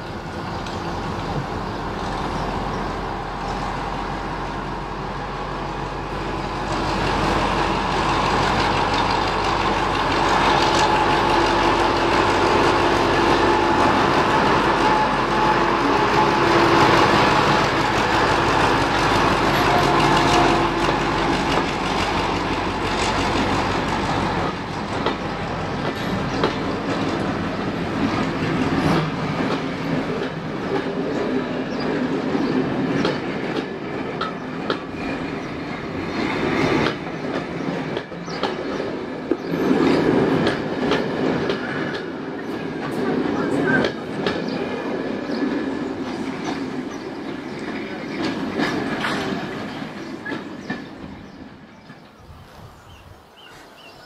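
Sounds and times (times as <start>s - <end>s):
diesel locomotive engine passing: 0.0s - 54.0s
train wheels clicking over rail joints: 6.5s - 52.2s.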